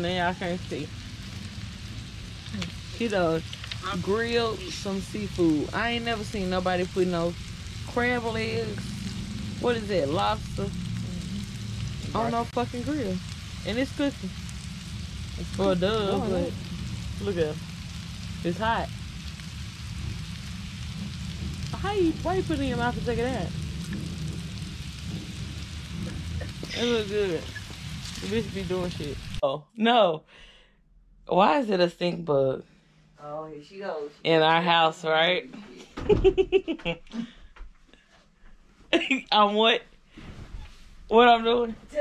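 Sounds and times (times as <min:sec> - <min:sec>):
faint crackles: 0:00.0 - 0:29.4
low rumble: 0:00.0 - 0:29.4
seafood sizzling on a grill: 0:00.0 - 0:29.4.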